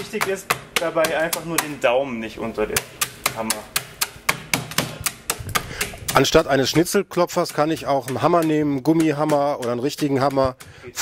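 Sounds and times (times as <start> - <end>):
mallet crushing ice in towel: 0.0 - 6.6.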